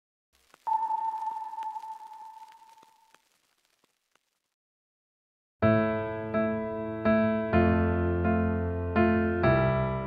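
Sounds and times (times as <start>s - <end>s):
clear sustained tone: 0.7s - 3.1s.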